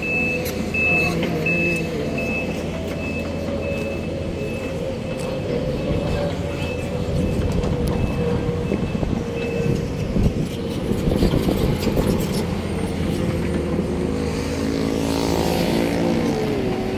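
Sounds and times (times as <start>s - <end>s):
excavator diesel engine droning: 0.0s - 16.9s.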